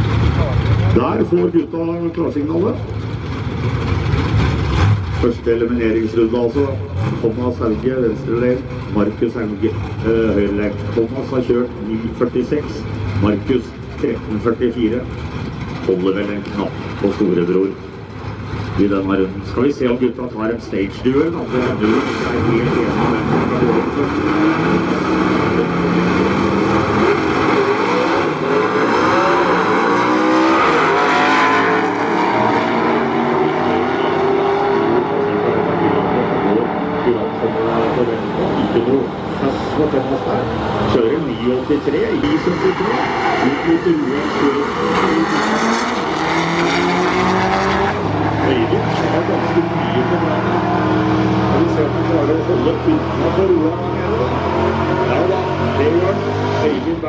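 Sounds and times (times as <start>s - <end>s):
drag racing engines revving: 0.0s - 57.0s.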